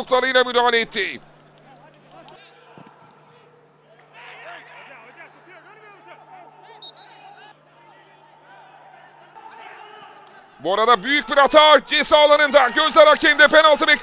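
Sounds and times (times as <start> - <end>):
players shouting: 0.0 - 14.0.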